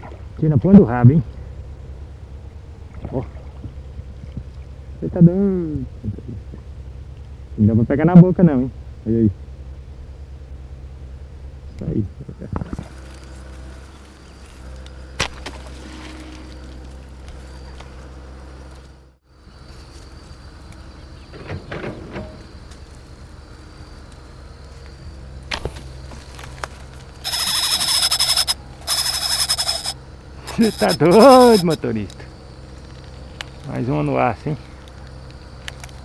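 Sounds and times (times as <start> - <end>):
steady low hum: 0.0 - 21.3, 22.4 - 36.0.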